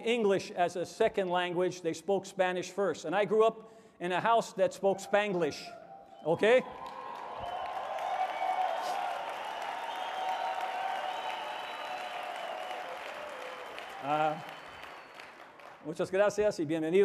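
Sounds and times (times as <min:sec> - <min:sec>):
audience applauding: 0:06.4 - 0:15.9.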